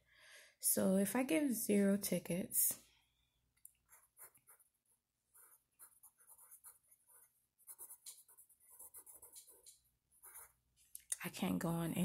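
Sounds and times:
pencil writing on paper: 3.8s - 10.7s.

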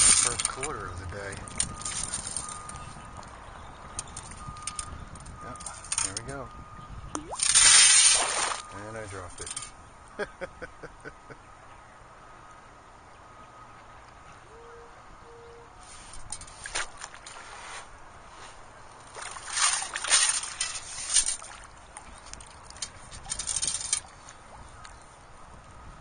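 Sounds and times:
water and sand sloshing: 7.2s - 9.7s, 15.8s - 25.4s.

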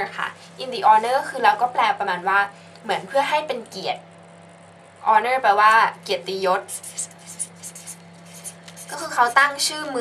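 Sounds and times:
low electrical hum: 0.0s - 10.0s
pen scratching on paper: 6.6s - 9.5s.

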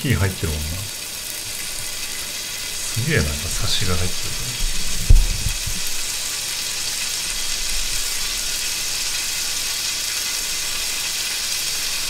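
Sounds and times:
meat sizzling on grill plate: 0.0s - 12.0s.

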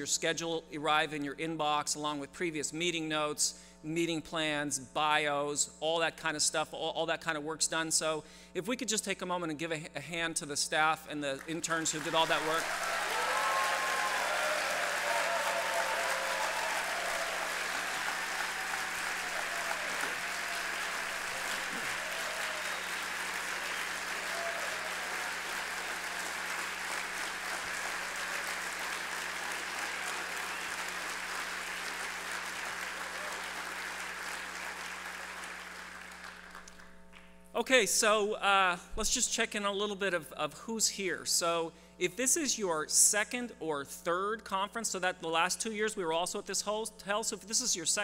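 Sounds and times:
large audience applauding: 11.4s - 37.0s.

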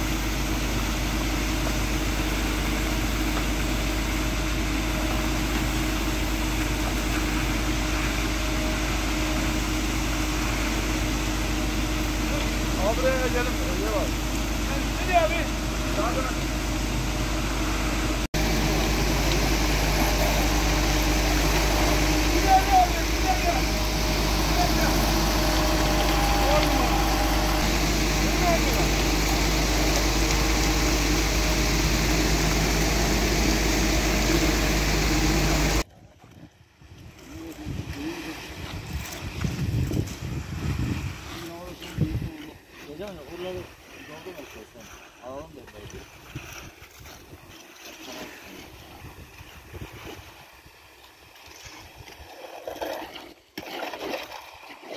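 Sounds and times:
concrete mixer truck running: 0.0s - 35.8s
workers' voices: 10.2s - 16.9s, 18.3s - 35.8s, 41.2s - 46.4s
concrete pouring down chute: 18.3s - 35.9s, 37.3s - 47.0s
wind buffeting microphone: 36.8s - 42.3s.

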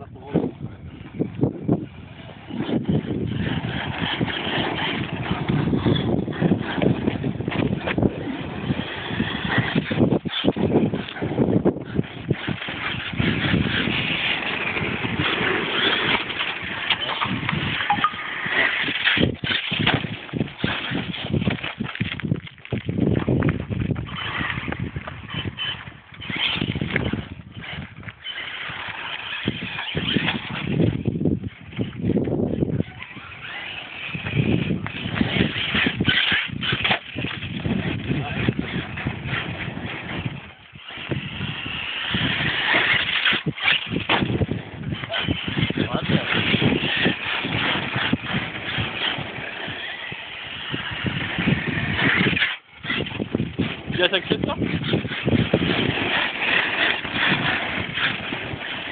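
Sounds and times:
tyres on gravel: 0.0s - 58.9s
electric rc truck running: 0.2s - 58.9s
electric motor whining: 0.7s - 21.9s, 23.2s - 58.9s.

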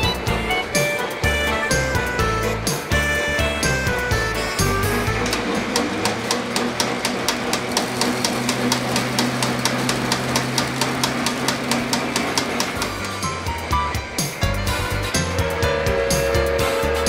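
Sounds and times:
electric motor hum: 0.0s - 17.0s
fast even clicking: 4.4s - 14.4s.

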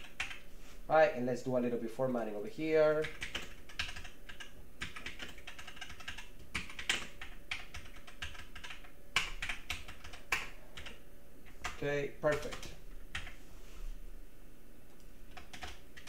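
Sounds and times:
computer keyboard typing: 0.0s - 0.4s, 3.0s - 13.4s, 15.3s - 16.0s.

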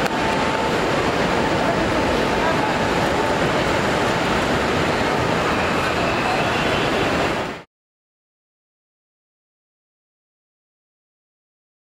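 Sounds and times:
airport terminal din: 0.0s - 7.6s.

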